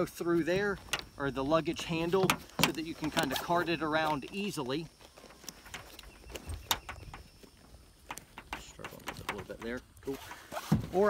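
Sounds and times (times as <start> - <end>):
backpack rustling: 2.0 - 11.0.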